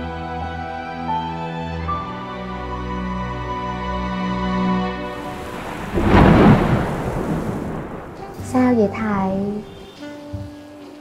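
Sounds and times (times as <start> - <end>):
thunder clap rumbling: 5.1 - 10.0
rain falling: 5.1 - 10.9.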